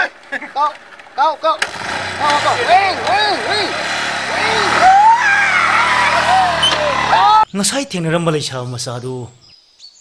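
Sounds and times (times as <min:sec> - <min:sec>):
motorcycle engine running: 0:00.0 - 0:07.4
men shouting and whooping: 0:02.0 - 0:07.5.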